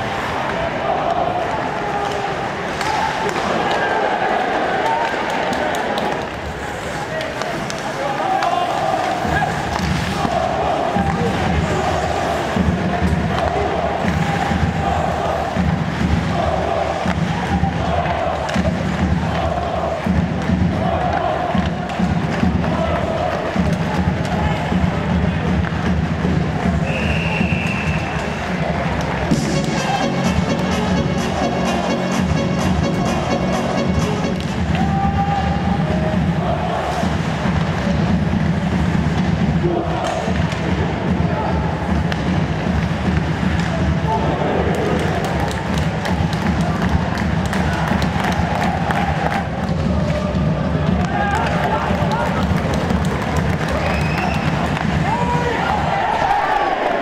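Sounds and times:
crowd chanting: 0.0 - 7.2, 7.9 - 25.5, 27.8 - 38.3, 46.6 - 57.0
short high whistle: 26.8 - 28.2.

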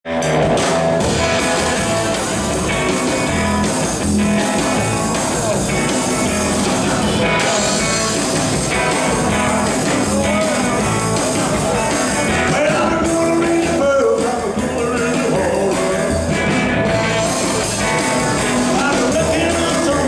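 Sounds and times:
hollow-body electric guitar: 0.0 - 20.0
drum kit beat: 0.1 - 20.0.

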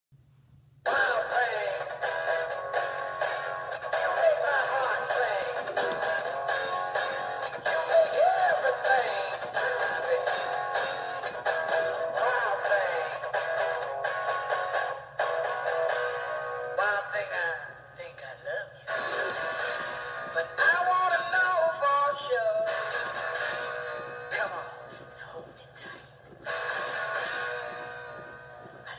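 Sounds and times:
toy singing through speaker: 3.8 - 10.8.

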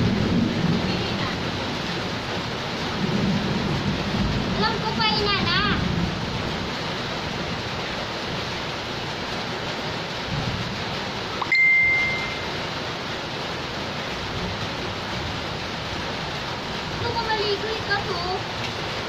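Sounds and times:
rain on concrete and puddles: 0.0 - 19.0
short clear ding: 11.4 - 12.4.

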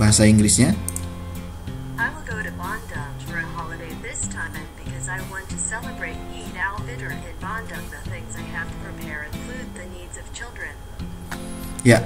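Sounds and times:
background music with low notes: 0.0 - 12.0
synthesized voice speaking: 2.0 - 10.8.

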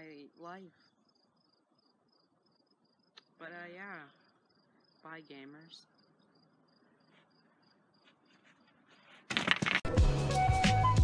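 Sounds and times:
cricket chirping: 0.0 - 8.7.

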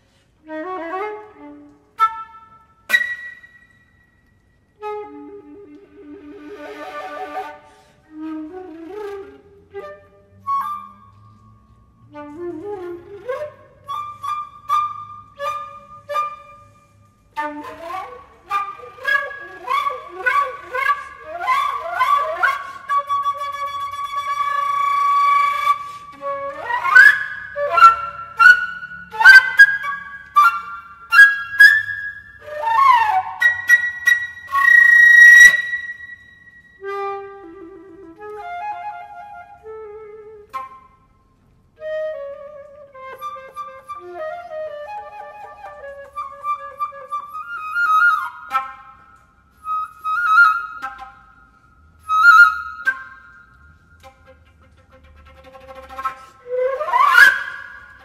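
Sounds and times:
concert flute playing: 0.0 - 58.0.

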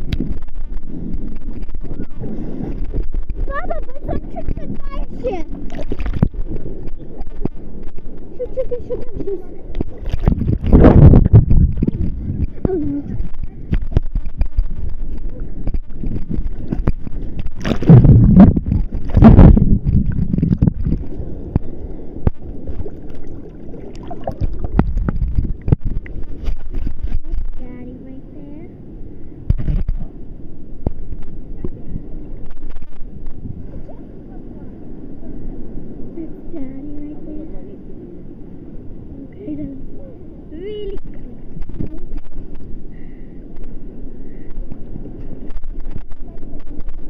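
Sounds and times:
underwater sloshing and gurgling: 0.0 - 47.0
loud water splashing: 17.4 - 26.0.

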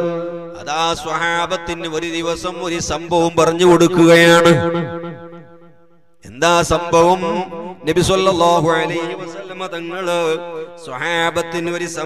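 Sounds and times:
man preaching over public address: 0.0 - 4.9, 6.2 - 12.0.

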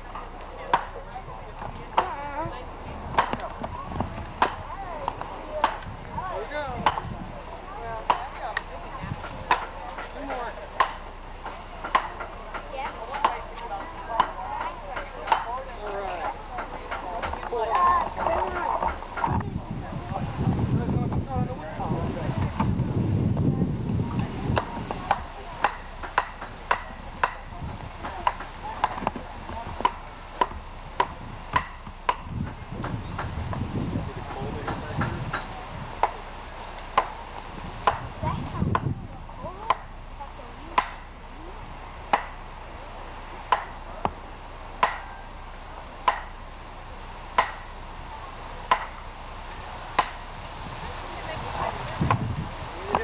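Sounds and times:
wind rumble on microphone: 0.0 - 10.3, 16.2 - 44.4, 47.6 - 53.0.

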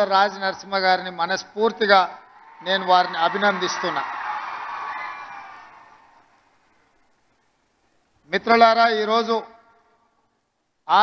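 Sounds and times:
stadium crowd cheering and applauding: 2.4 - 6.4.

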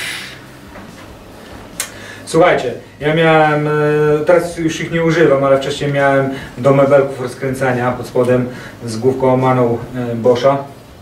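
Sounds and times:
short hiss: 0.0 - 0.6.

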